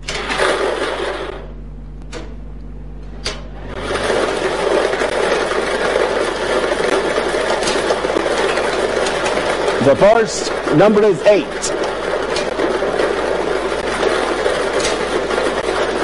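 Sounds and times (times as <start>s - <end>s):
lottery balls clattering in machine: 0.0s - 1.5s, 3.2s - 16.0s.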